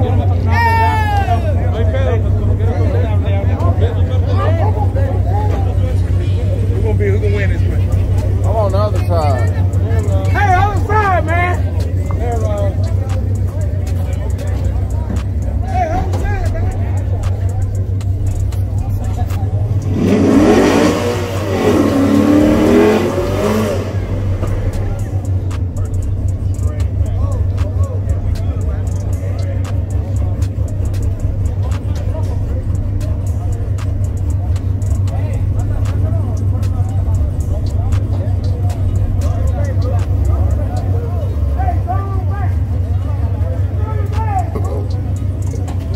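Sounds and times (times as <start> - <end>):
race cars idling: 0.0 - 45.9
engine revving hard: 16.0 - 40.8.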